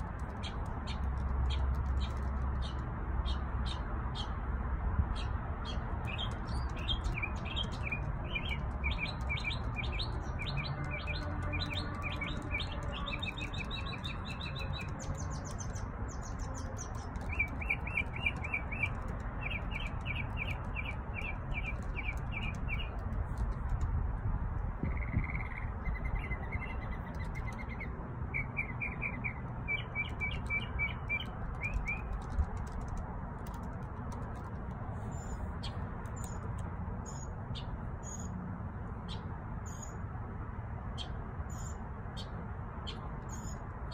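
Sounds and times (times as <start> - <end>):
songbirds chirping: 0.0 - 40.2, 40.8 - 43.9.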